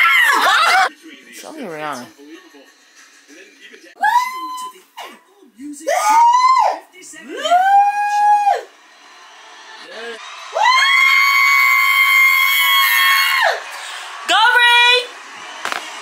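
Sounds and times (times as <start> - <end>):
excited high-pitched screams: 0.0 - 0.9, 4.0 - 4.8, 5.9 - 8.7, 10.2 - 13.7.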